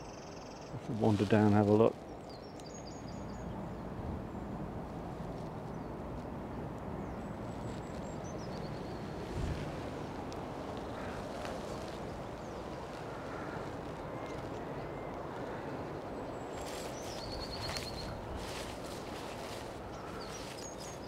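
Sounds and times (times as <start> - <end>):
steady wind: 0.0 - 21.0
light clicks in grass: 4.8 - 21.0
songbird trilling: 11.0 - 21.0.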